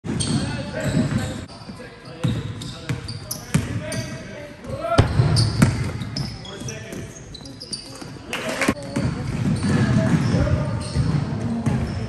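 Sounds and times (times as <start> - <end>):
players' voices: 0.1 - 12.0
high-pitched shoe squeaks: 0.2 - 4.2, 5.4 - 8.2
basketball bouncing on court: 2.2 - 7.1, 8.8 - 12.0.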